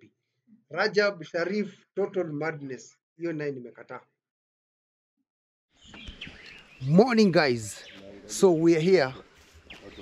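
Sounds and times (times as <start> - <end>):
birds chirping faintly: 5.7 - 10.0.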